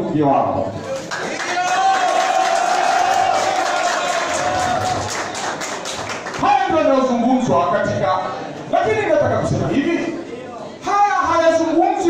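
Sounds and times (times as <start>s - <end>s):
audience cheering and clapping: 0.9s - 6.4s.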